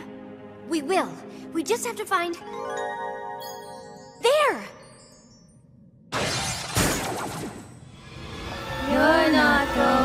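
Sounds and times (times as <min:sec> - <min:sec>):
cartoon crystal shattering crash: 0:06.1 - 0:07.8.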